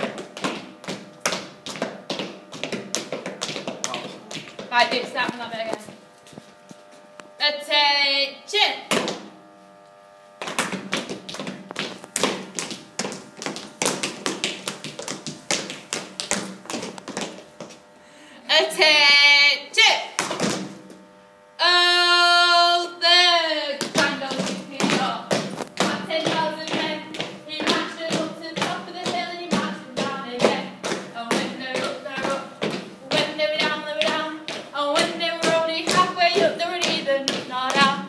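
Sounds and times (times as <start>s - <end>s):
sharp rhythmic taps: 0.0s - 6.0s, 10.4s - 17.8s, 20.2s - 20.8s, 23.7s - 38.0s.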